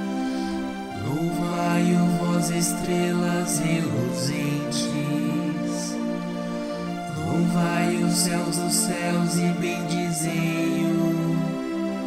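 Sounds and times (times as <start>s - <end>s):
voices chanting a psalm: 0.0s - 12.0s.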